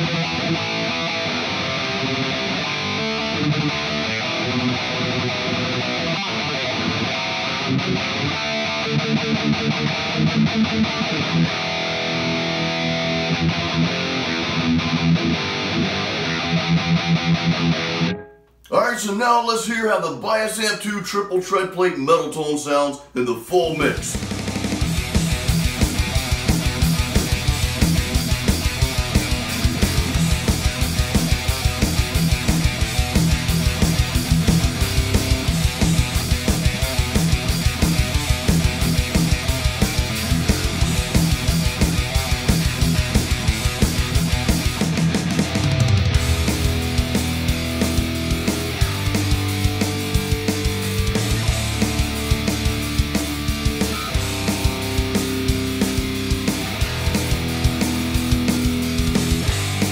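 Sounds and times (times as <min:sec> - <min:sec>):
distorted electric guitar riffs: 0:00.0 - 0:59.9
heavy metal song: 0:00.0 - 0:59.9.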